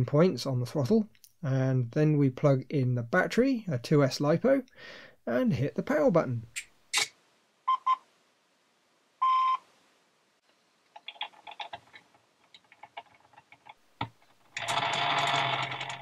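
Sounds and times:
plastic gearbox whirring: 13.2s - 16.0s.

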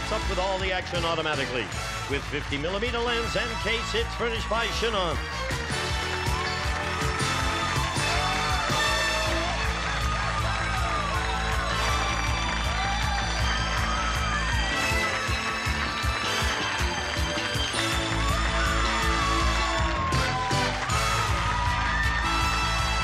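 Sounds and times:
game show theme music: 0.0s - 23.0s.

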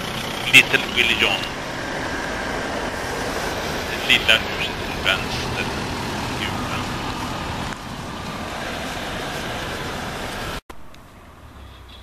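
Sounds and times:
vehicle running rumble: 0.0s - 12.0s.

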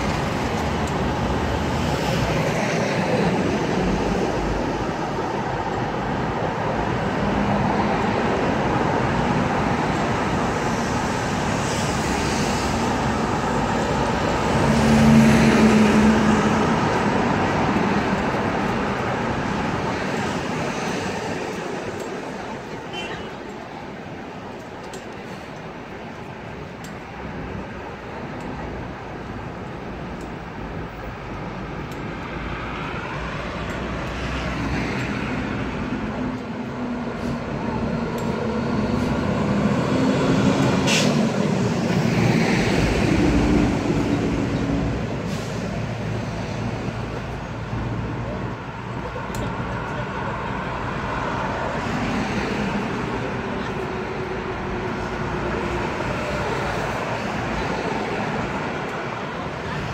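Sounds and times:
street traffic: 0.0s - 59.9s.

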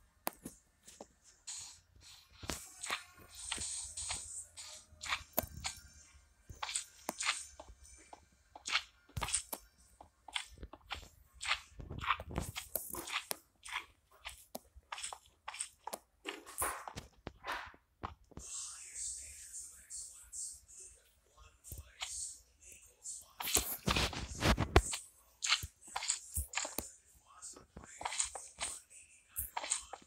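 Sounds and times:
close-up crunching and crackling: 8.6s - 9.6s, 10.3s - 17.0s.

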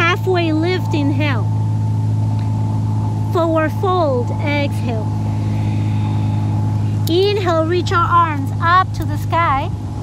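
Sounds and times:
steady low-pitched drone: 0.0s - 10.0s.

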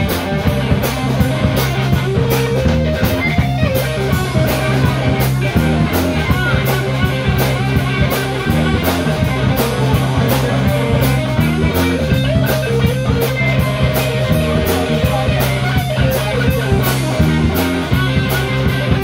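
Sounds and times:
bass guitar: 0.0s - 19.0s
drum kit beat on cymbals: 0.0s - 19.0s
electric guitar melody: 0.0s - 19.0s.

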